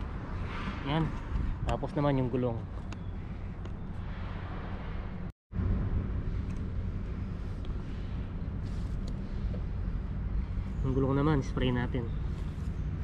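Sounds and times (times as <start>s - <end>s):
low outdoor rumble: 0.0s - 13.0s.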